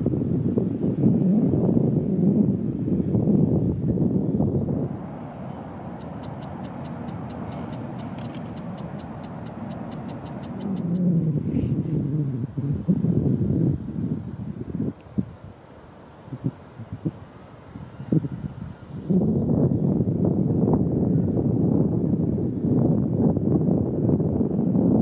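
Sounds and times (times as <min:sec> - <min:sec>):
faint high ticks: 0:06.0 - 0:10.9.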